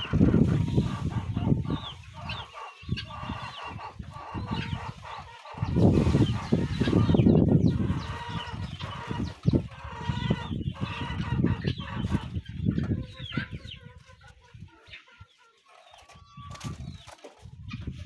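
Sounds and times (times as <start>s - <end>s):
chickens clucking: 0.0s - 18.0s.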